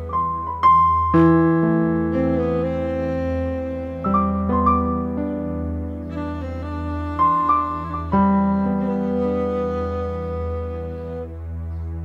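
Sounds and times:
slow sad violin melody: 0:00.0 - 0:12.0.

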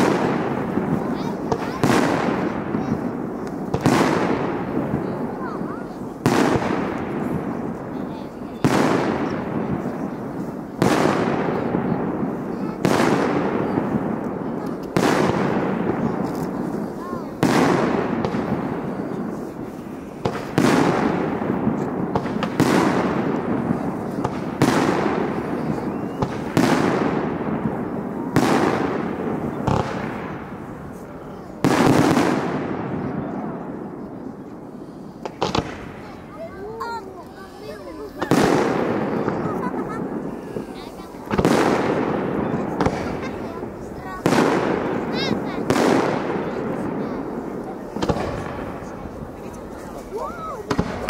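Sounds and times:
long echo: 0:00.0 - 0:51.0
firework shells bursting: 0:35.1 - 0:36.3, 0:38.0 - 0:51.0.

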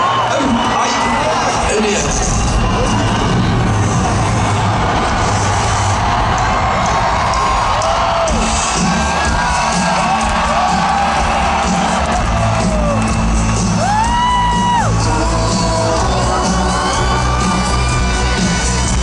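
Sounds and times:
crowd cheering and whooping: 0:00.0 - 0:19.0.

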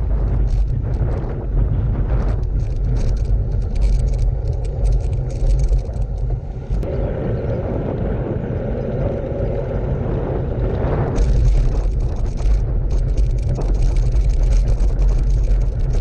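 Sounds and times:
tyres humming on asphalt: 0:00.0 - 0:16.0
wind rumble on microphone: 0:00.0 - 0:16.0.

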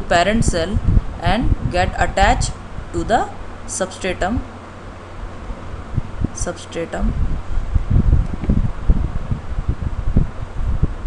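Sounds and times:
rubbing and knocking on microphone: 0:07.9 - 0:09.4.

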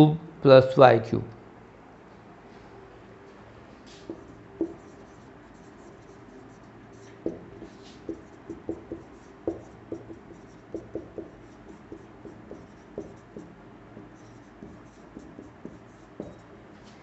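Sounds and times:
marker writing on whiteboard: 0:03.9 - 0:17.0.

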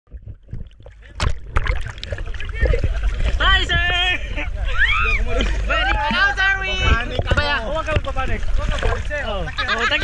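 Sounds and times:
low rumble of water: 0:00.1 - 0:10.0
water splashing: 0:00.1 - 0:10.0.

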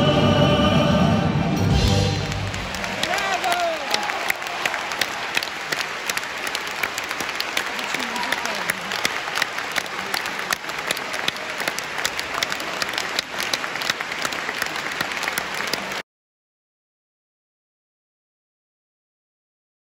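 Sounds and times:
audience applauding: 0:01.7 - 0:16.0.

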